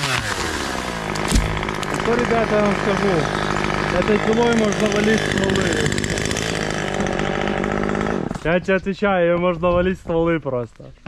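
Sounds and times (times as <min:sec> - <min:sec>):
chainsaw running: 0:00.0 - 0:09.6.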